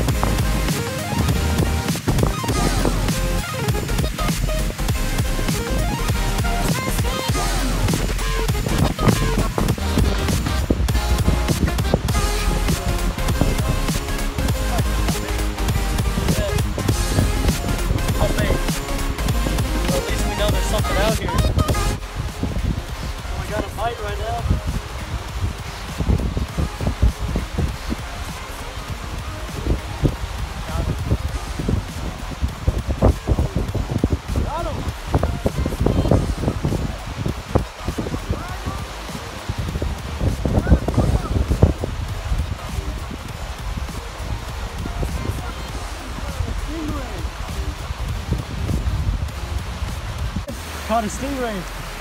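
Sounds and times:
wind buffeting microphone: 0:00.0 - 0:50.9.

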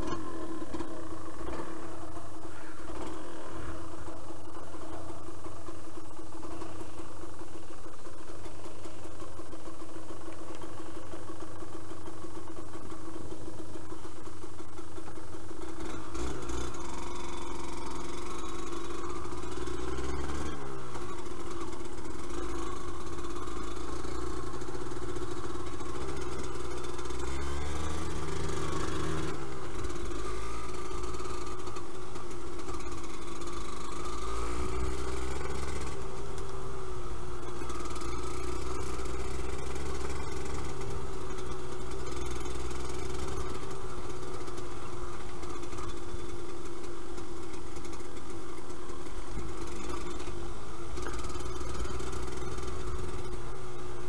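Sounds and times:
two-stroke motorcycle engine: 0:00.0 - 0:54.0.

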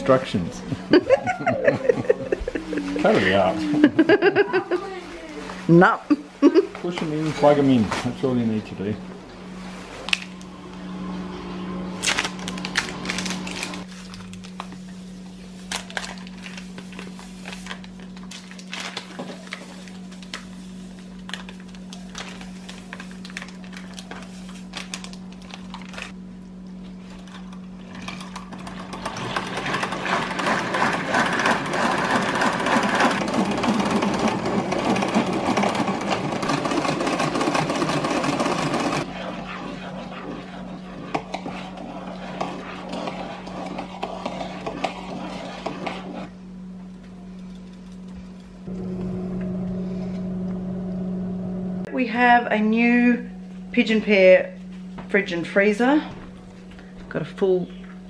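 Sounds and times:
low hum: 0:00.0 - 0:06.8, 0:07.9 - 0:58.0
egg beater whirring and clattering: 0:27.3 - 0:46.4.

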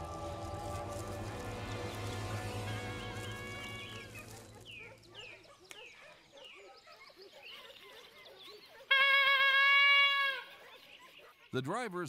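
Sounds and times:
hunting horn blast: 0:00.0 - 0:04.6.

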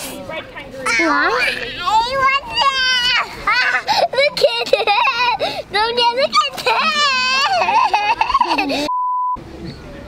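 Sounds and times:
test-tone beep: 0:08.9 - 0:09.4.

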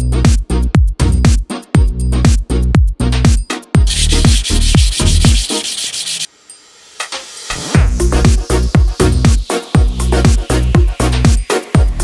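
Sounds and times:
kick-drum music beat: 0:00.0 - 0:06.2, 0:07.1 - 0:12.0
sandpaper rubbing on wood: 0:03.9 - 0:06.3.

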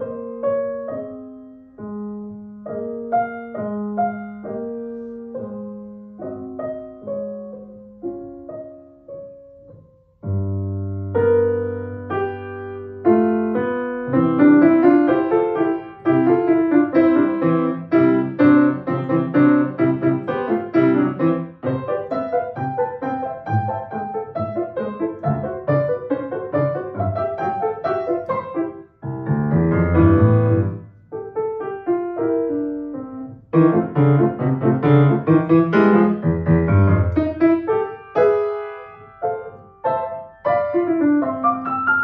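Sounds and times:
grand piano classical piece: 0:00.0 - 0:42.0.

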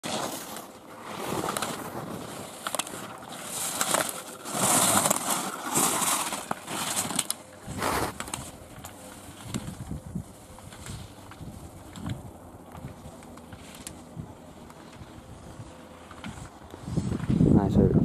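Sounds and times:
skis scraping on hard snow: 0:00.0 - 0:08.6.

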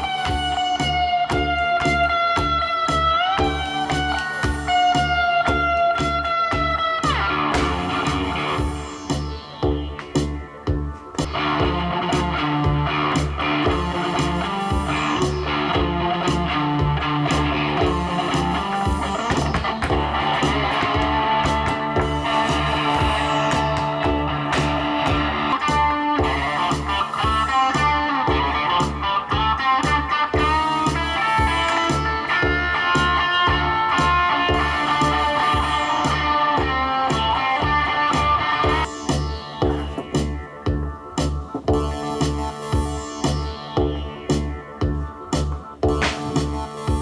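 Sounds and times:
electric guitar music: 0:00.0 - 0:47.0
pulsing low beat: 0:00.0 - 0:47.0.

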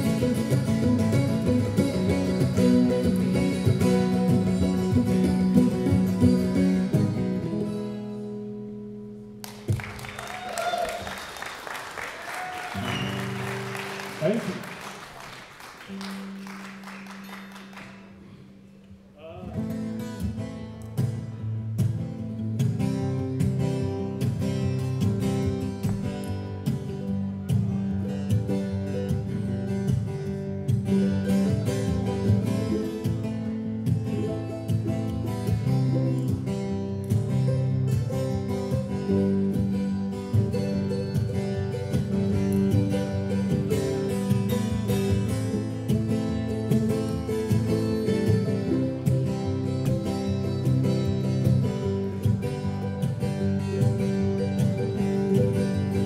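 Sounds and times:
strummed guitar and mandolin: 0:00.0 - 0:09.9, 0:12.8 - 0:15.0, 0:15.8 - 0:56.0
audience applause: 0:09.4 - 0:18.2.

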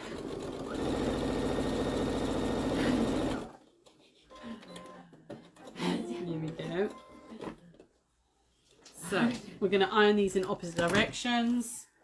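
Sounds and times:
sewing machine stitching: 0:00.0 - 0:03.6.

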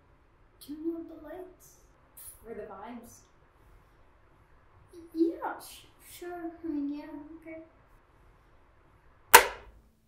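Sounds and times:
faint steady hum: 0:00.0 - 0:10.0
light switch click: 0:09.4 - 0:09.6.

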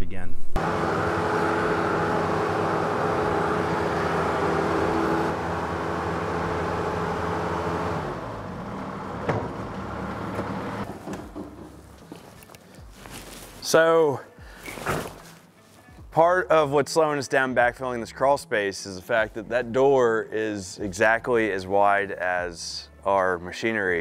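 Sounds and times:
diesel engine running: 0:00.6 - 0:10.9.

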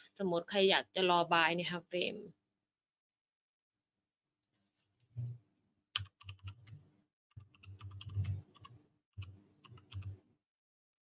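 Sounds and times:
keyboard typing: 0:05.2 - 0:10.2.

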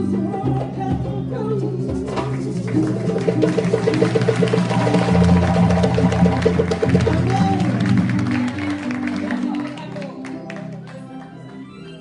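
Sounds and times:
drums playing a quick beat: 0:01.9 - 0:08.4
held low notes: 0:02.6 - 0:08.5.

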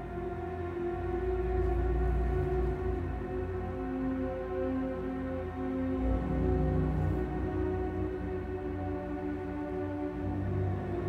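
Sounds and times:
dark sustained drone tones: 0:00.0 - 0:11.0.

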